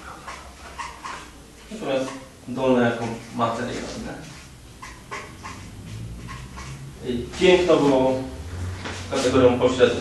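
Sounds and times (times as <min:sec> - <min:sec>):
marker squeaking on paper: 0:00.0 - 0:02.3, 0:02.9 - 0:06.9.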